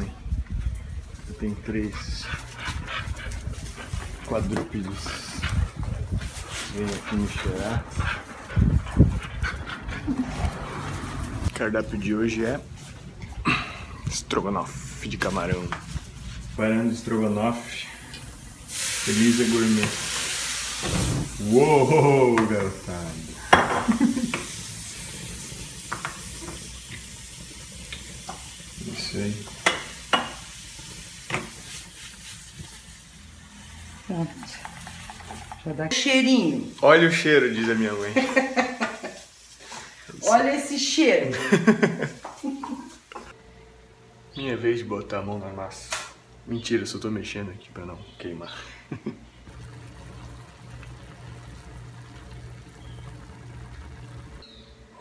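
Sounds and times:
dogs sniffing: 1.7 - 11.4
shrimp sizzling in frying pan: 18.3 - 34.0, 36.3 - 40.3, 49.5 - 54.4
flames of flambe: 19.8 - 28.8, 49.4 - 54.4.

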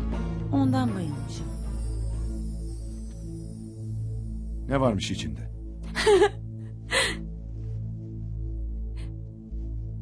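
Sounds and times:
soft background music: 0.0 - 10.0
woman laughing breathily: 5.9 - 7.2.

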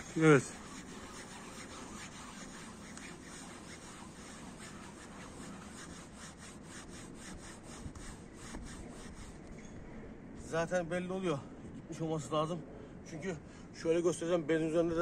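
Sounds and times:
cloth scrubbing fabric: 0.0 - 9.4.

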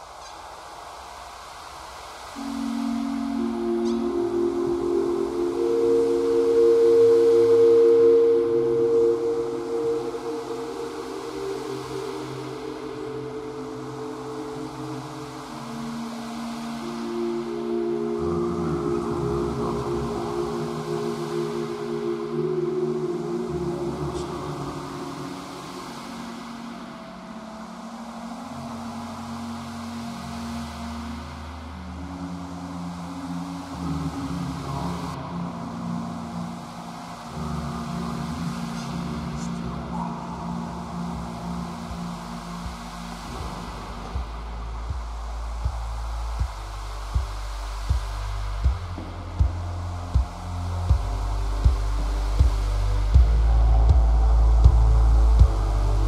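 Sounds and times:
ambient synthesizer chords: 0.0 - 56.0
soft noisy texture: 0.0 - 56.0.

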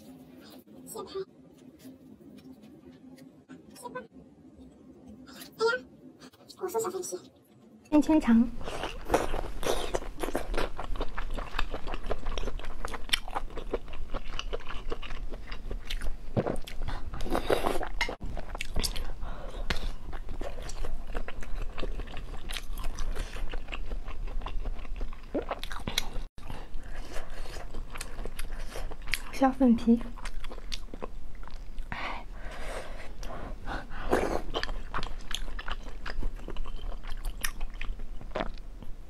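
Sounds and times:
biting and chewing food: 8.6 - 29.4, 30.1 - 31.9, 33.2 - 38.9.

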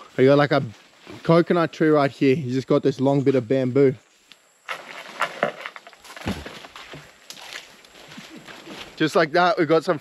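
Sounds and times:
leaves rustling: 3.2 - 10.0
bamboo pole knocking in palm: 6.2 - 7.0
dull thud: 6.2 - 7.1.

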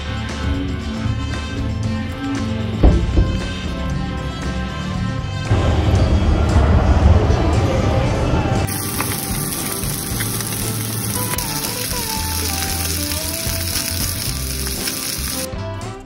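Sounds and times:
background music: 0.0 - 16.0
fish sizzling in a frying pan: 8.7 - 15.5.

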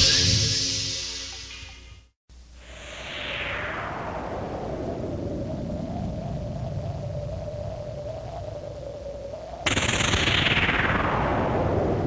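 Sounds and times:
low rumbling noise: 2.4 - 12.0
burst of noise sweeping downward: 2.6 - 12.0.

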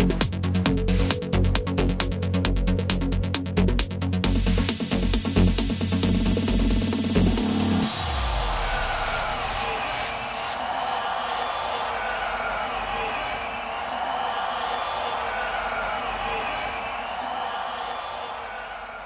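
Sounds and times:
crowd cheering and chattering: 6.8 - 19.0.

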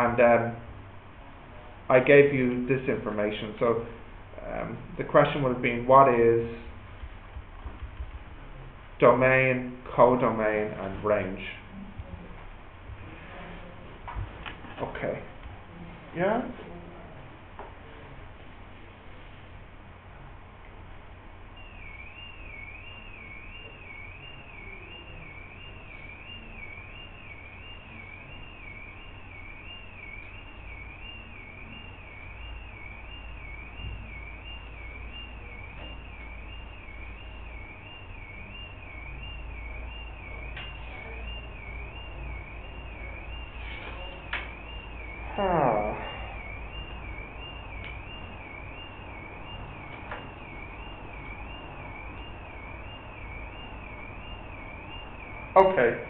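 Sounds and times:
warbling electronic alarm tone: 21.5 - 56.0.

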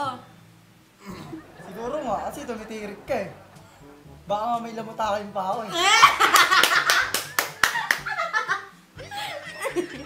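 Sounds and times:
group laughing: 1.0 - 4.0, 5.8 - 10.0
hand claps: 6.2 - 8.2.

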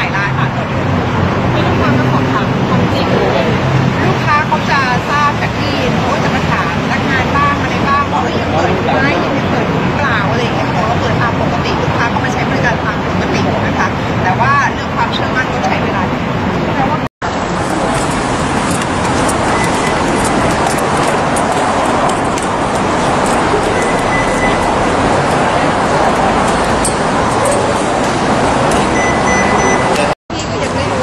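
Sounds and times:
woman speaking: 0.0 - 17.1, 29.9 - 31.0
steady background noise: 0.0 - 31.0
traffic and street noise: 0.0 - 31.0.

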